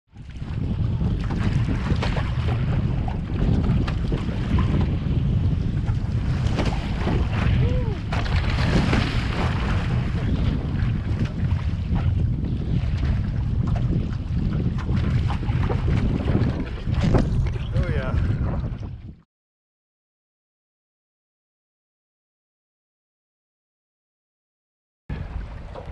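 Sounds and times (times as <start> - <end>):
water splashing along canoe hull: 0.1 - 19.2, 25.1 - 25.9
wind buffeting microphone: 0.1 - 19.3, 25.1 - 25.9.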